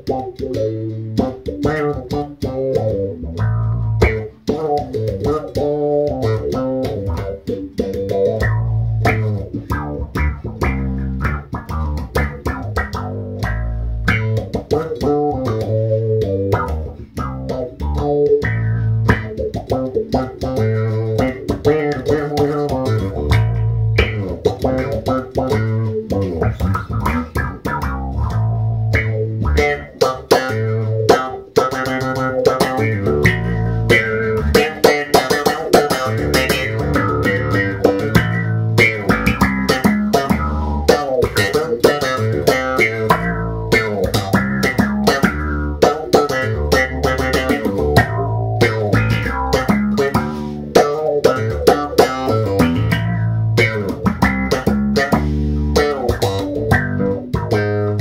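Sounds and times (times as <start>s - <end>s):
electric bass with envelope filter: 0.0s - 58.0s.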